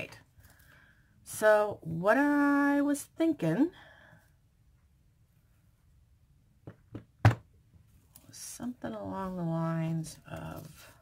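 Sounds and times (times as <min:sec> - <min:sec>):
knocks on tabletop: 0:06.6 - 0:07.5.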